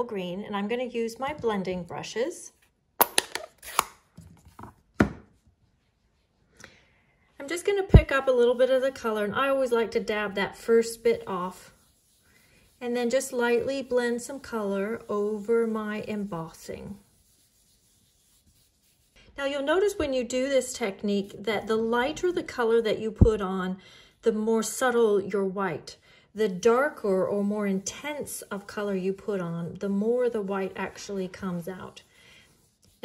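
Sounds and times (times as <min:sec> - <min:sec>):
brush rubbing on cardstock: 0:08.4 - 0:19.2, 0:26.6 - 0:33.0.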